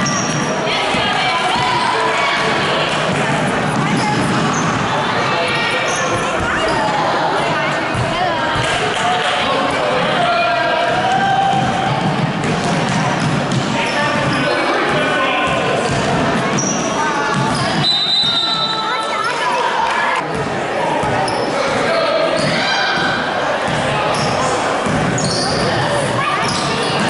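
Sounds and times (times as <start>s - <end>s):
indistinct spectator chatter: 0.0s - 27.0s.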